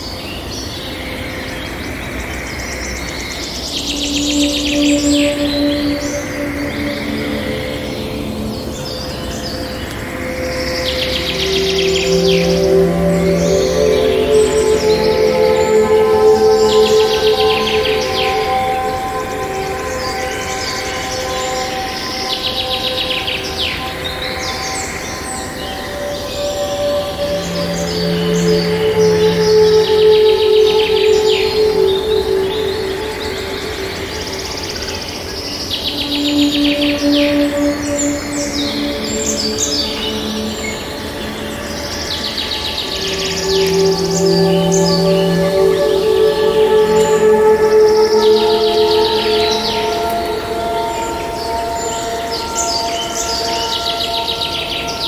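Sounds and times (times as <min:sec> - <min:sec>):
calm music of long held notes: 0:00.0 - 0:55.0
songbirds chirping and trilling: 0:00.0 - 0:55.0.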